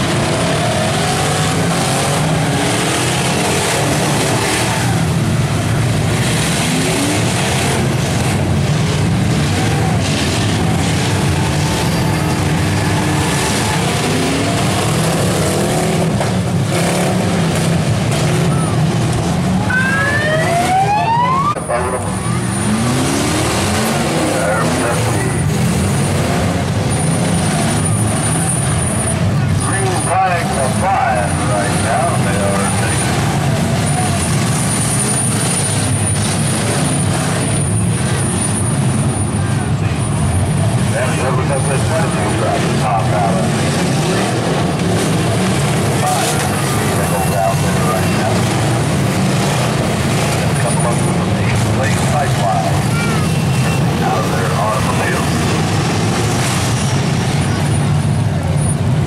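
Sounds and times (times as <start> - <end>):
car engines revving: 0.0 - 59.0.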